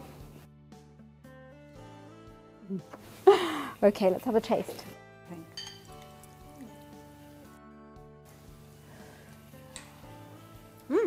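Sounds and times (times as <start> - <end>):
soft background music: 0.0 - 11.0
cutlery clinking against bowls: 5.5 - 6.5.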